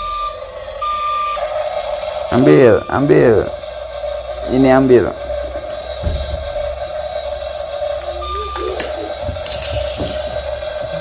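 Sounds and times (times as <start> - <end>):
toy excavator motor whine: 0.0 - 11.0.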